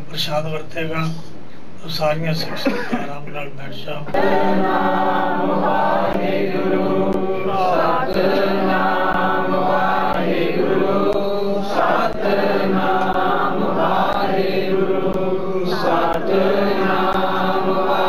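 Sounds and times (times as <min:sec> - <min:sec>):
voices chanting through microphone: 0:04.0 - 0:18.0.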